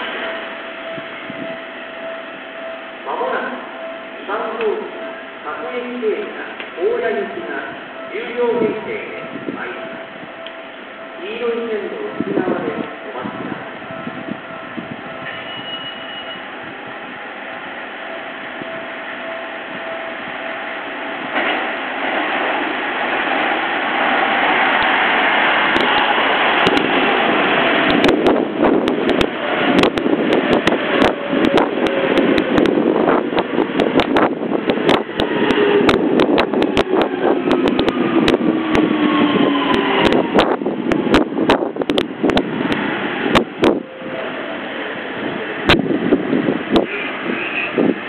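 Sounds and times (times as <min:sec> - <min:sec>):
high-pitched tone: 0:00.0 - 0:21.2
electric train running: 0:13.4 - 0:48.0
steady rushing noise: 0:16.5 - 0:48.0.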